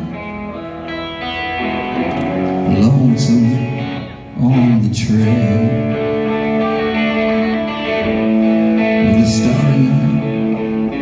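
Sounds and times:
bass guitar: 0.0s - 11.0s
electric guitars ringing out: 0.0s - 11.0s.

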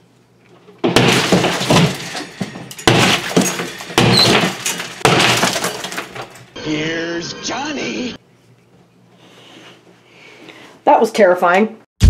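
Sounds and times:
drywall crumbling and paper tearing: 0.8s - 6.4s.

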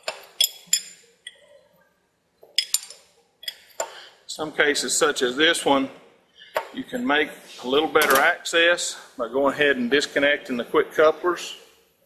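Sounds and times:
wrench clinking on metal fitting: 0.0s - 1.4s, 2.6s - 3.9s.

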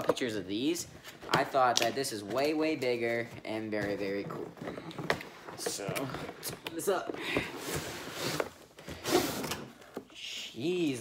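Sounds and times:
cardboard box scraping and sliding: 7.6s - 9.4s.

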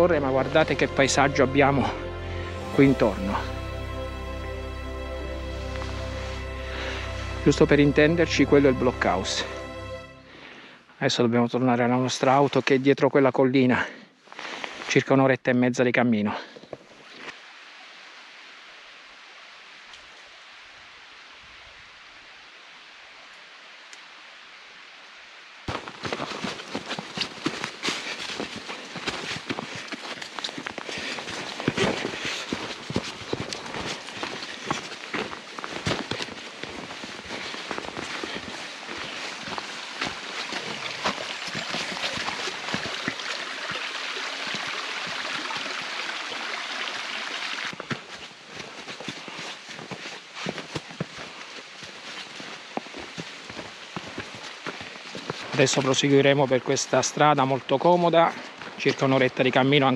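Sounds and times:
footsteps crunching on snow and leaves: 2.6s - 9.6s, 25.7s - 45.9s, 47.6s - 57.0s, 58.2s - 59.9s.

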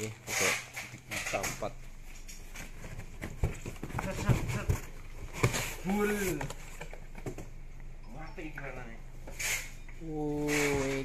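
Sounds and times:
cardboard box rustling: 2.6s - 7.3s.

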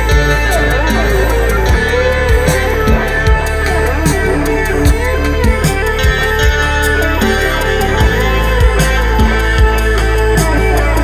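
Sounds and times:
electronic backing track: 0.0s - 11.0s
guitar bending notes: 0.0s - 11.0s
low drum thumps: 1.6s - 10.0s.

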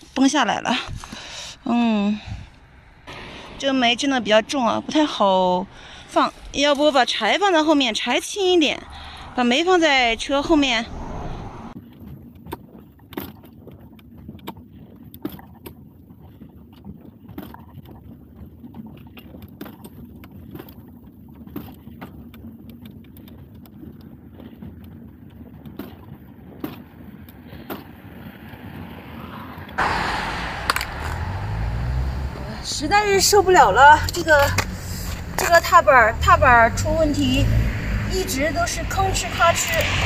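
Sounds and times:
rumble of tyres on road: 0.0s - 40.0s.

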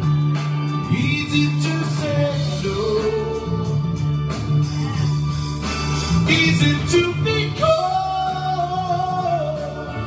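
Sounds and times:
backing track with bass and guitar: 0.0s - 10.0s
man singing into a microphone: 0.8s - 3.8s, 6.2s - 10.0s.

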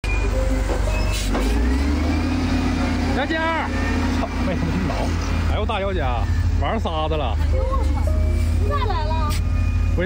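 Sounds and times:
diesel engine rumbling: 0.0s - 10.0s.

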